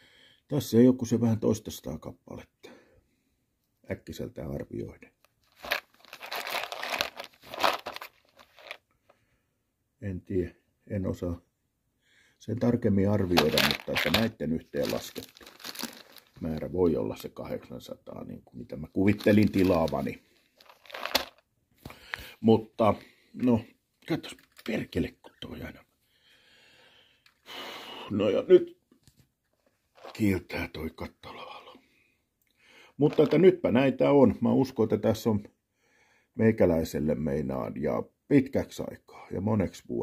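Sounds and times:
plastic box crinkling and rustling: 0:05.4 - 0:08.8, 0:13.2 - 0:16.7, 0:19.0 - 0:21.4, 0:29.6 - 0:30.3, 0:33.1 - 0:33.4.

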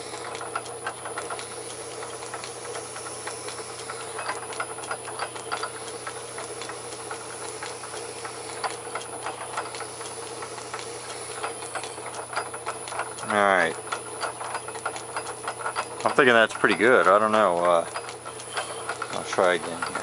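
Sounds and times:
irregular clicks and scratches: 0:00.0 - 0:20.0
lathe motor humming: 0:00.0 - 0:20.0.

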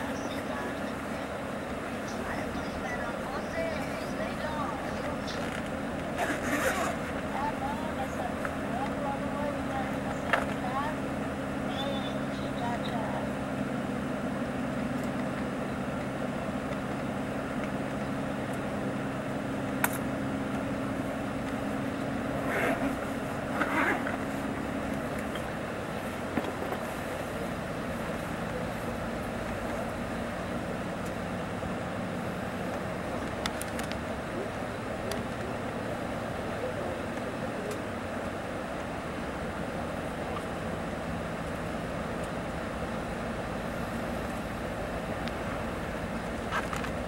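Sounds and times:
coach engine hum: 0:00.0 - 0:47.0.

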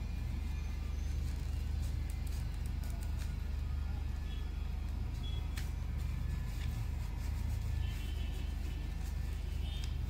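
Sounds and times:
steady low hum: 0:00.0 - 0:10.0
scissors snipping tissue paper: 0:01.8 - 0:03.6, 0:04.9 - 0:10.0.

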